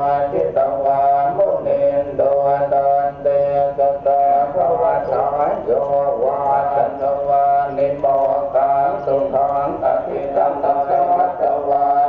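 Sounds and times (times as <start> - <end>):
voices chanting in unison: 0.0 - 12.0.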